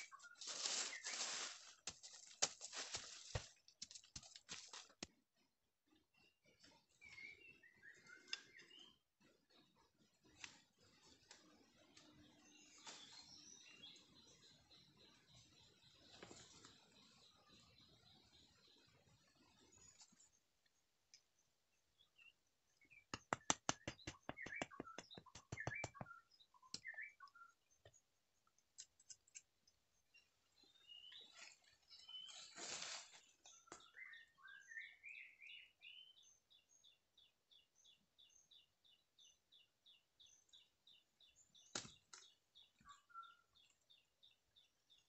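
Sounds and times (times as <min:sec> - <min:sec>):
faint bird song whistles: 0:06.9 - 0:09.0, 0:23.8 - 0:27.7, 0:33.5 - 0:45.0
bird clicking and whistling: 0:23.0 - 0:27.2.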